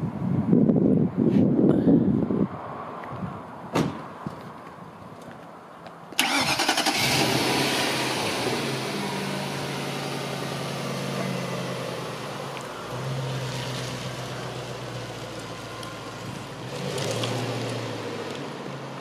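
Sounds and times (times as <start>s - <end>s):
car engine starting and idling: 6.1s - 19.0s
car pulling away: 6.2s - 19.0s.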